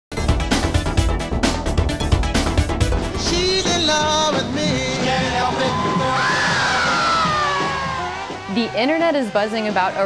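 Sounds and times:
live rock band: 0.2s - 8.5s
crowd noise: 3.2s - 10.0s.

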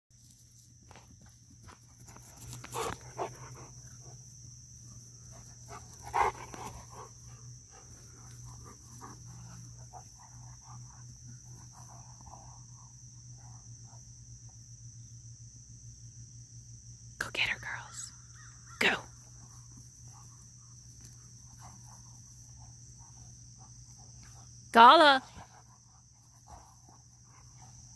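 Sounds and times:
faint high hum: 0.2s - 27.9s.

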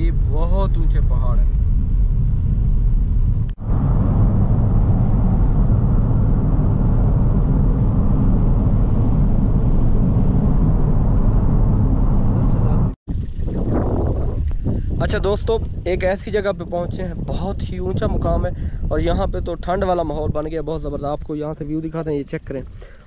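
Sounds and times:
car engine and tyres rumbling: 0.0s - 23.0s.

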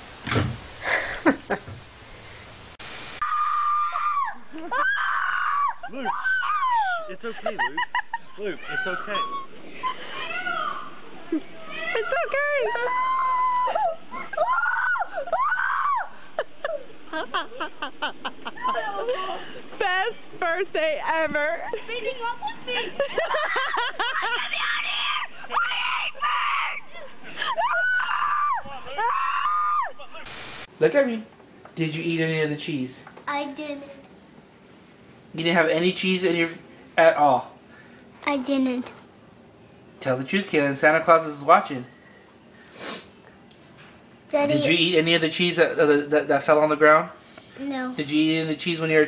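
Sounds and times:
burst of hiss: 0.0s - 3.2s, 30.2s - 30.7s
boy screaming and crying: 3.2s - 7.1s, 12.6s - 16.2s, 24.3s - 30.0s
child wailing: 8.7s - 9.4s, 12.6s - 16.2s.

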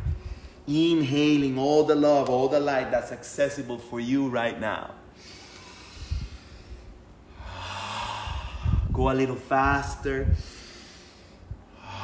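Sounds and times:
man breathing deeply: 0.0s - 0.7s, 5.1s - 9.0s, 10.2s - 12.0s.

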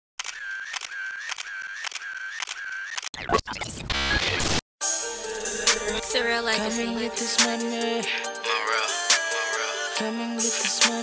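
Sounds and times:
camera shutter clicks: 0.2s - 3.1s.

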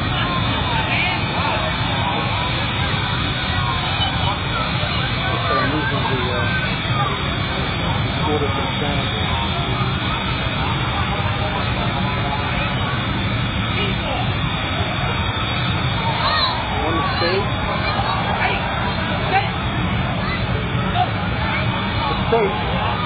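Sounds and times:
faint voices: 0.0s - 23.0s
jet engine roaring: 0.0s - 23.0s.

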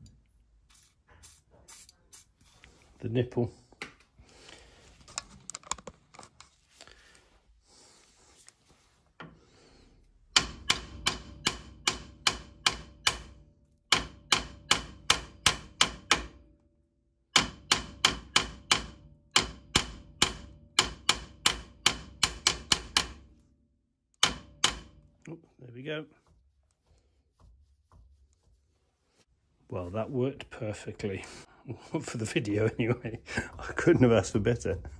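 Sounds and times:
hammer tapping on metal pliers: 10.3s - 16.4s, 17.3s - 23.3s, 24.2s - 25.0s.

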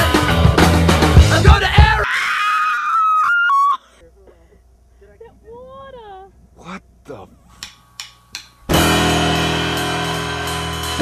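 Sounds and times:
woman screaming: 1.6s - 4.0s.

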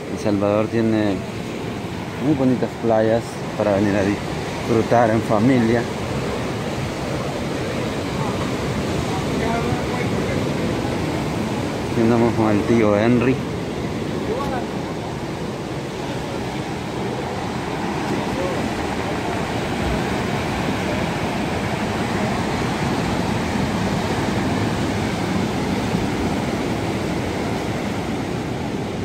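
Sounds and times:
surf breaking on a cobble beach: 0.0s - 29.0s.

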